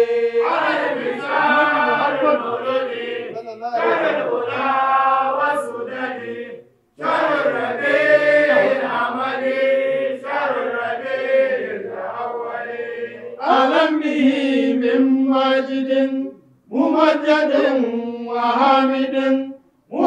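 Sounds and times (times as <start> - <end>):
men chanting long held notes: 0.0 - 20.0.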